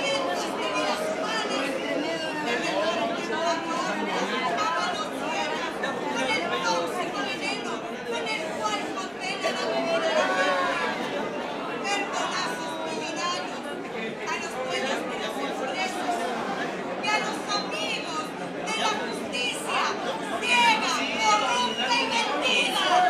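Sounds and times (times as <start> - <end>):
woman speaking through loudspeakers: 0.0 - 11.0, 11.7 - 16.3, 17.0 - 23.0.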